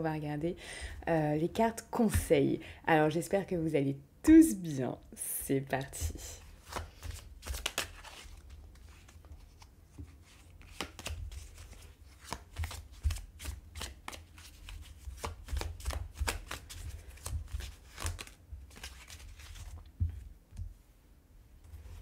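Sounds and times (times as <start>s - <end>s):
cards being shuffled: 6.4s - 20.3s.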